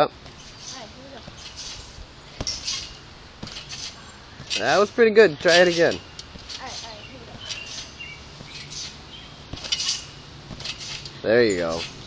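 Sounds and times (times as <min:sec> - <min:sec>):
trampoline springs squeaking: 0:00.0 - 0:12.0.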